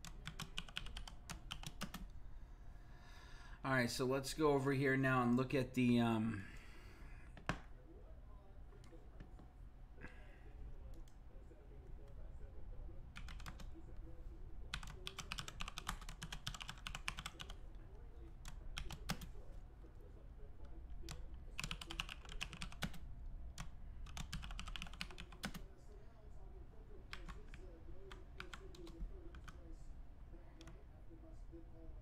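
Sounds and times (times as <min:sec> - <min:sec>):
typing on computer keyboard: 0:00.0 - 0:02.1, 0:13.1 - 0:13.7, 0:14.7 - 0:17.6, 0:18.4 - 0:19.3, 0:21.1 - 0:23.0, 0:23.6 - 0:25.6, 0:27.1 - 0:29.6
low steady hum: 0:00.0 - 0:32.0.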